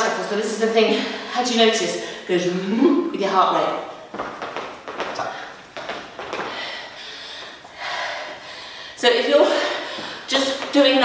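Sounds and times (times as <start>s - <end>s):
woman breathing hard: 6.3s - 10.3s.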